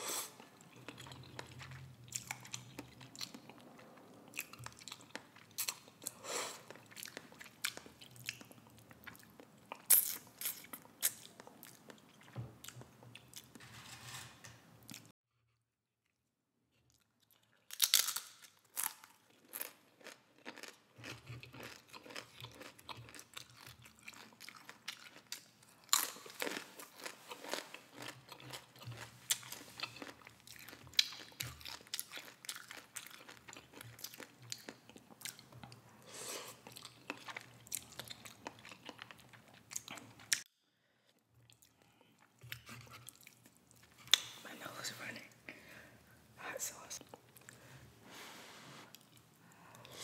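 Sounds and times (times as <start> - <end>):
chewing and wet mouth sounds: 0.4 - 13.6, 16.7 - 35.8, 36.4 - 44.4, 48.9 - 50.0.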